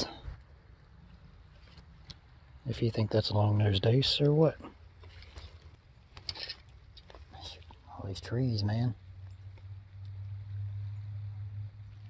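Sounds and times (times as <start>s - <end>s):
faint low rumble: 6.8s - 12.0s.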